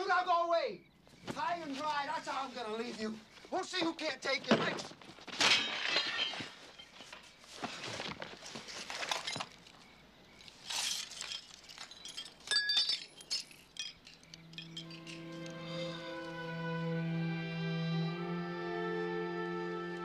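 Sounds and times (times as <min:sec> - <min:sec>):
objects clattering: 0:03.8 - 0:15.6
glassy clinks: 0:05.6 - 0:07.0, 0:10.7 - 0:15.8
quiet music: 0:14.1 - 0:20.0.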